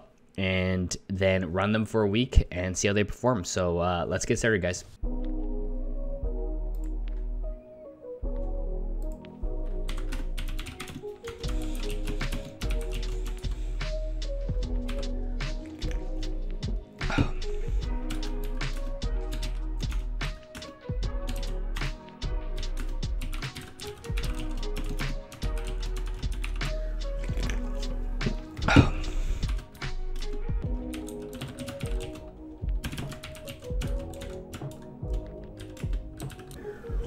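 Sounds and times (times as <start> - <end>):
background music: 0.0 - 37.0
computer keyboard typing: 9.9 - 13.8, 18.0 - 21.6, 22.6 - 36.6.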